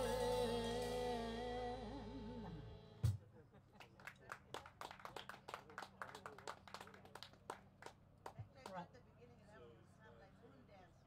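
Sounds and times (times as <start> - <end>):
faint scattered hand claps: 3.8 - 8.8.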